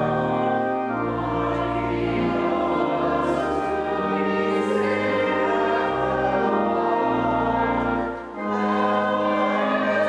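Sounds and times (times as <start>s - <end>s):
congregation singing a hymn: 0.0s - 10.0s
pipe organ: 0.0s - 10.0s.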